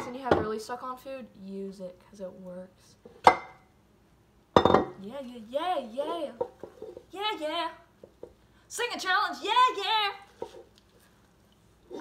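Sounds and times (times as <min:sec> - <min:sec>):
dish clinking: 0:04.6 - 0:05.0
dishes clattering: 0:04.6 - 0:05.0.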